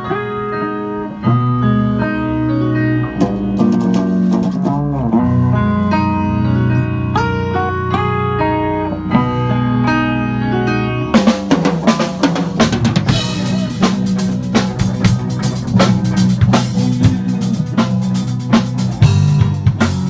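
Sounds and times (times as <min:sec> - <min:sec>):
bass guitar: 0:00.0 - 0:20.0
electric guitar: 0:00.0 - 0:20.0
keyboard notes: 0:00.0 - 0:20.0.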